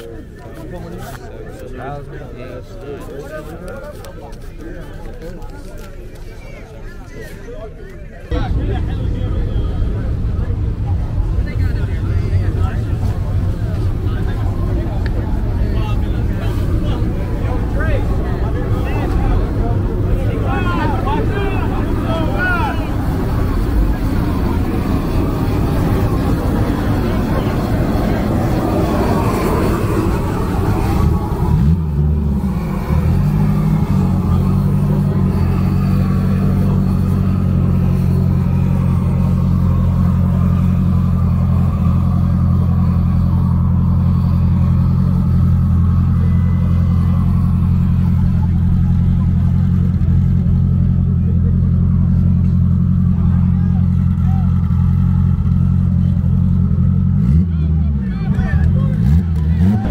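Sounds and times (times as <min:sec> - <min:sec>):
people talking: 0:00.0 - 0:59.9
car engine idling: 0:08.3 - 0:59.9.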